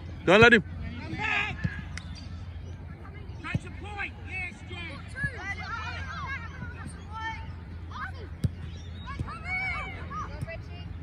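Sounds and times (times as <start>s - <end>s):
players and spectators shouting: 3.4s - 10.9s.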